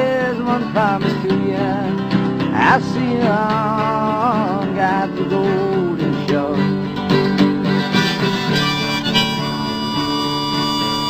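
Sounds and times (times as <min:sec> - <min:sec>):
acoustic guitar: 0:00.0 - 0:11.0
harmonica playing: 0:07.6 - 0:11.0.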